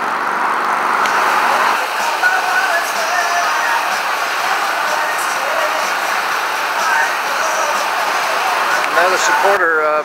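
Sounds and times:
road traffic with tyre hiss: 0:00.0 - 0:10.0.

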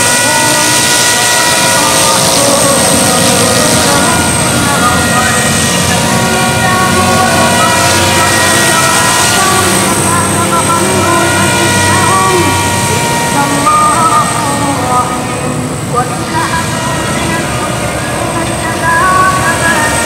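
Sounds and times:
rc helicopter motor whine: 0:00.0 - 0:20.0.

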